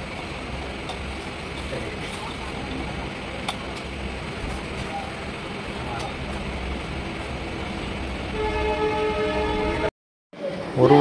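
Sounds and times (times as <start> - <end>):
vehicle rumble from inside: 0.0 - 8.4.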